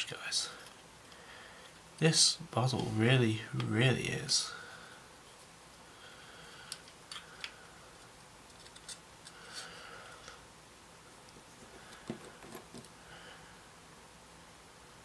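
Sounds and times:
plastic parts clicking: 8.5 - 9.4.

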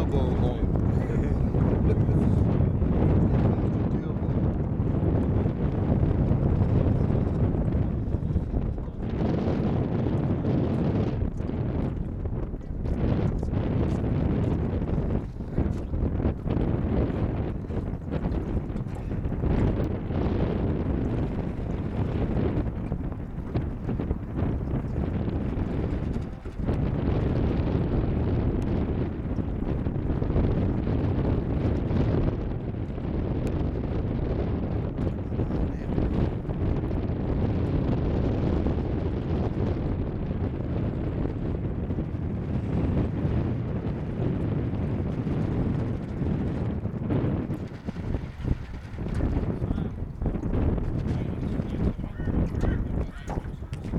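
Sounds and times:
wind buffeting microphone: 0.0 - 53.9.

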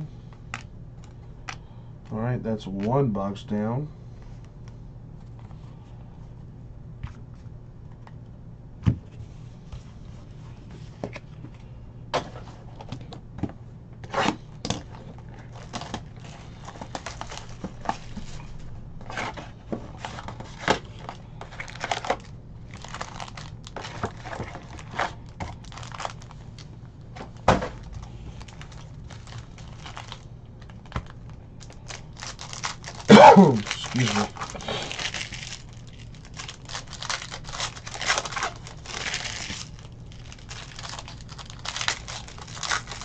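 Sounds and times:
steady low hum: 0.0 - 43.0
foil packs crinkling: 14.8 - 43.0.

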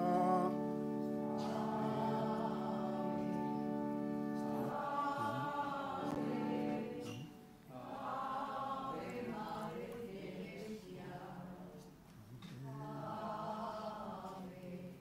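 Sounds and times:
choir singing a hymn: 0.0 - 12.0, 12.6 - 15.0.

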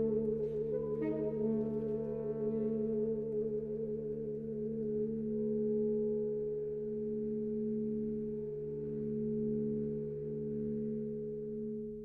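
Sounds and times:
saxophone quartet sustained chord: 0.0 - 7.3.

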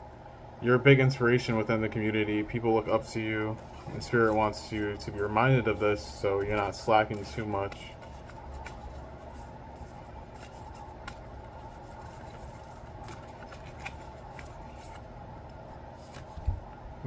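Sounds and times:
low background hum: 0.0 - 17.0
cards being shuffled: 3.5 - 16.8.

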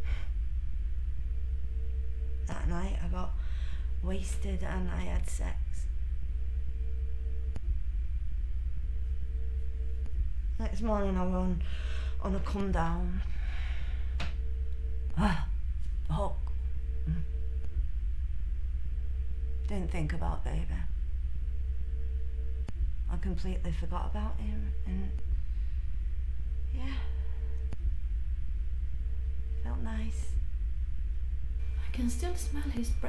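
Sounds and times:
faint high steady tone: 0.0 - 33.0
faint hum: 0.0 - 33.0
low rumble: 0.0 - 33.0.

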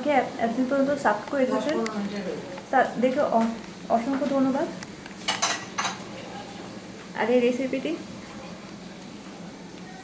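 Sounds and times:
crockery clinking: 5.3 - 6.0.

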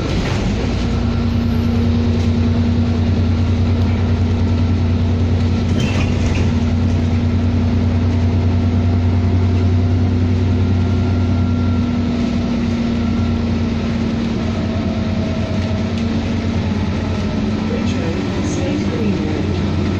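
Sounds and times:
bus engine drone: 0.0 - 19.9.

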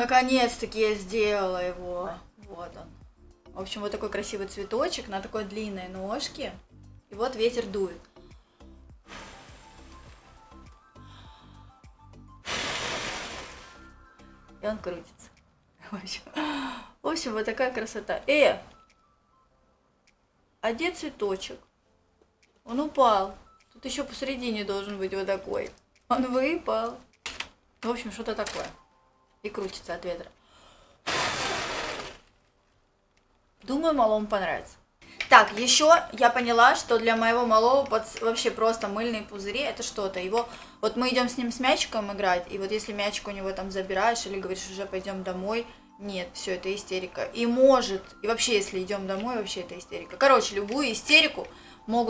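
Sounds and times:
background music: 0.0 - 52.0
person blowing air: 8.3 - 10.4, 12.4 - 14.0, 31.0 - 32.3
breath blowing into microphone: 9.0 - 10.0, 12.4 - 13.9.

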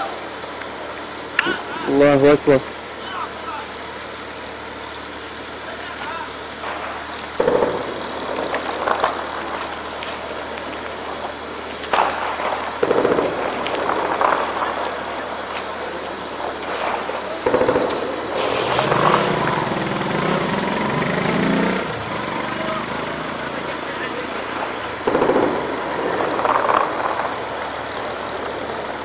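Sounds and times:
shelling booms: 6.6 - 20.5, 24.2 - 28.8
gunfire cracks: 6.8 - 10.3, 11.9 - 15.6, 25.0 - 27.5.

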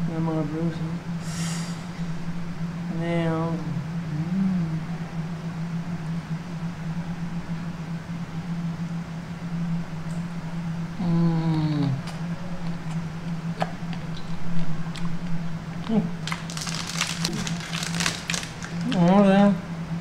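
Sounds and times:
low hum: 0.0 - 20.0
person humming mmm: 4.0 - 5.2, 11.0 - 12.3
crisp chocolate shell crunching: 16.2 - 19.1.

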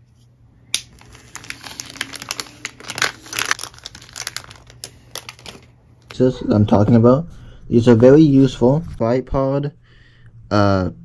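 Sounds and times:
plastic bag crinkling: 0.8 - 6.2.

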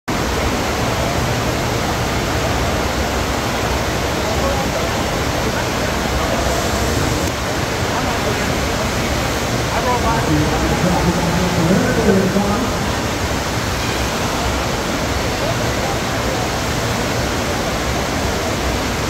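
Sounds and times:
water rushing: 0.1 - 19.0.

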